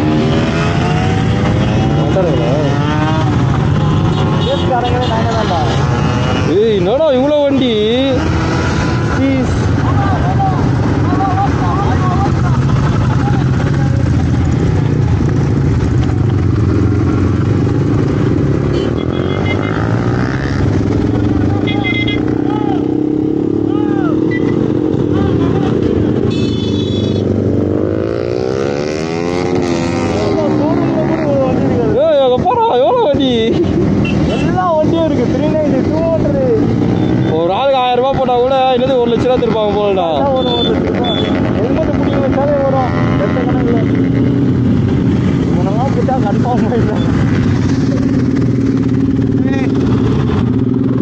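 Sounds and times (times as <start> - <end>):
motorcycle engine running: 0.0 - 37.5, 38.1 - 51.0
road and wind noise: 0.0 - 51.0.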